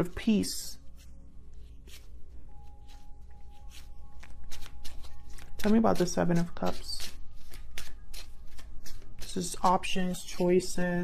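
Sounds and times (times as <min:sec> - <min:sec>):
cards shuffling: 0:00.9 - 0:11.0.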